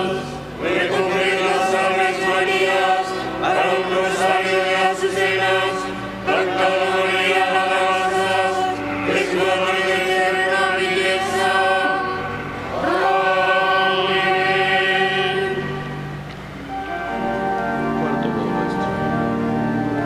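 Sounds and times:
choir singing a slow chant: 0.0s - 16.2s.

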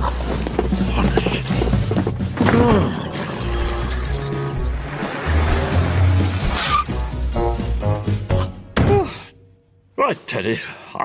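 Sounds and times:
cartoon background music: 0.0s - 9.2s
small car driving: 3.0s - 7.4s.

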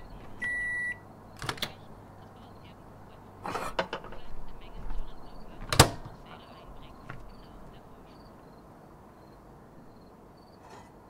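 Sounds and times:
microwave door latch click: 1.4s - 1.8s, 5.6s - 6.2s.

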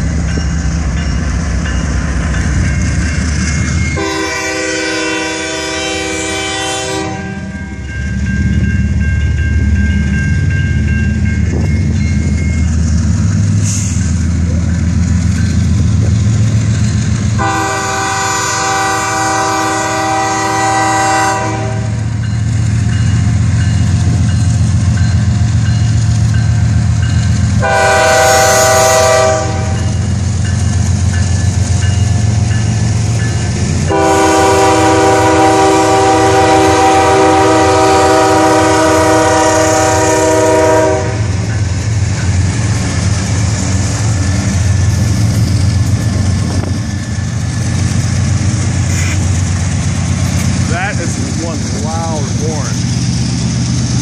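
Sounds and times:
diesel locomotive rumble: 0.0s - 54.0s
locomotive air horn blasts: 4.0s - 7.6s, 17.4s - 22.0s, 27.6s - 29.9s, 33.9s - 41.4s.

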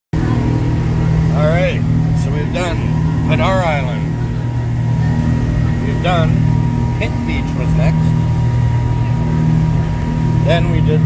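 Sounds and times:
boat engine running: 0.1s - 11.0s.

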